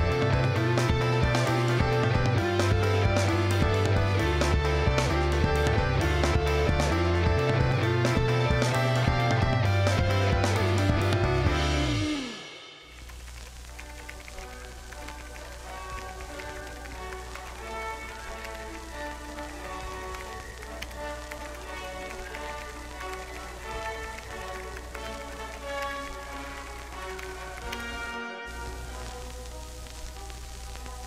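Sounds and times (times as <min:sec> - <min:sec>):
mellow background music: 0:00.0 - 0:31.0
rain-like hiss: 0:00.0 - 0:31.0.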